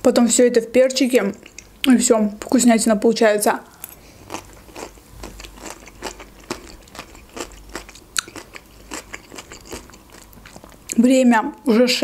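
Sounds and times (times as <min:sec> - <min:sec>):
crunchy cucumber chewing: 0:03.8 - 0:11.0.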